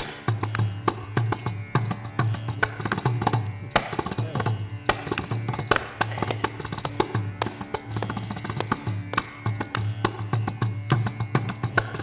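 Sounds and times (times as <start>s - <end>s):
mridangam drumming: 0.0s - 12.0s.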